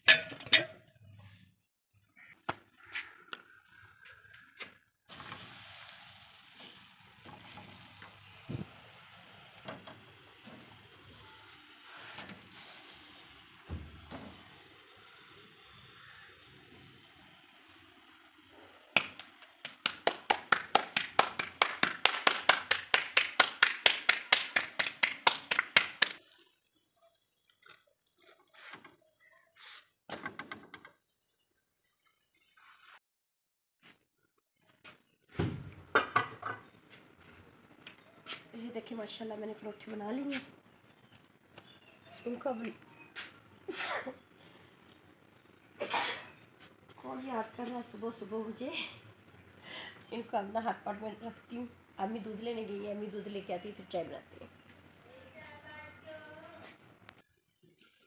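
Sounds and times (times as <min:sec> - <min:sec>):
steady hiss from griddle: 0:05.1 - 0:16.3.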